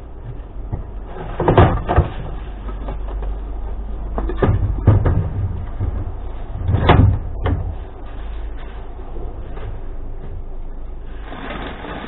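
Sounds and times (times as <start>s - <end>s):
steady low rumble: 0.0s - 12.0s
plastic crate clattering: 0.7s - 8.9s
sharp knocks: 4.1s - 7.8s.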